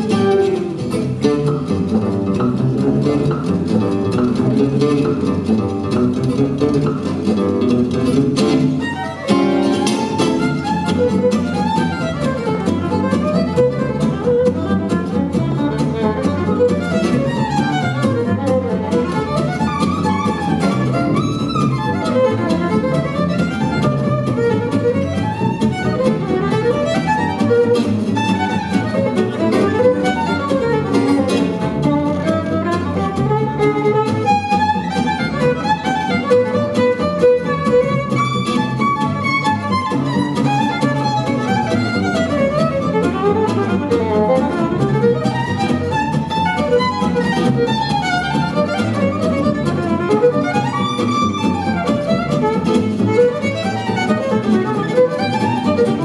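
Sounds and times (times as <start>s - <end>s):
bowed violin melody: 0.0s - 56.0s
double bass: 0.0s - 56.0s
strummed acoustic guitar: 0.0s - 56.0s.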